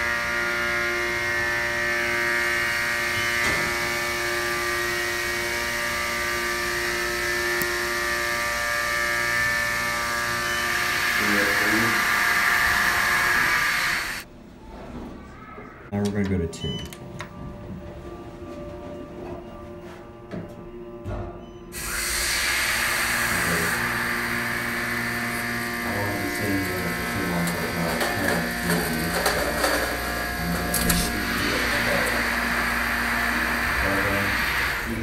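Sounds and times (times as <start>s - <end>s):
elevator motor whirring: 0.0s - 14.3s, 21.7s - 35.0s.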